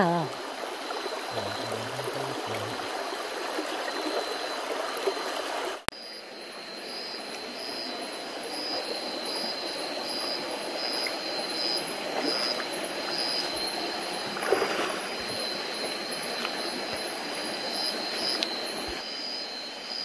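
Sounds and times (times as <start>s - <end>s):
stream water rushing: 0.0s - 5.8s, 6.4s - 19.1s
steady high whine: 5.9s - 20.0s.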